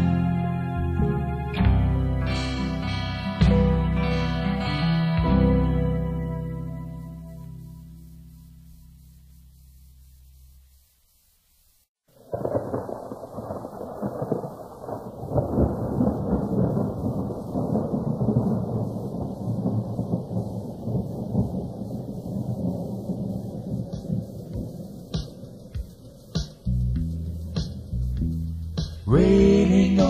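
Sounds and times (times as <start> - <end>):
music with steady bass notes: 0.0 - 11.0, 23.9 - 30.0
rain: 5.7 - 30.0
thunder rumbling: 12.1 - 30.0.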